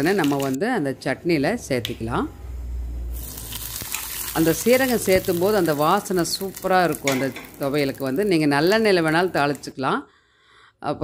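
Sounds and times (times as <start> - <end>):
hot oil sizzling: 0.0 - 0.6, 3.0 - 9.7.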